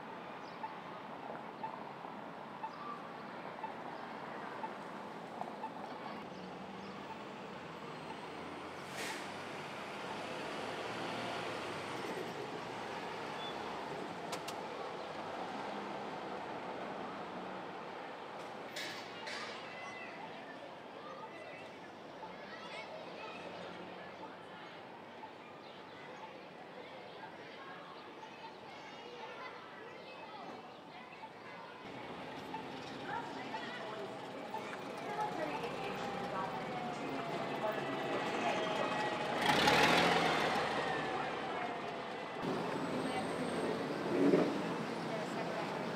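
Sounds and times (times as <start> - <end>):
bus engine and road noise: 0.0 - 21.1, 31.9 - 45.9.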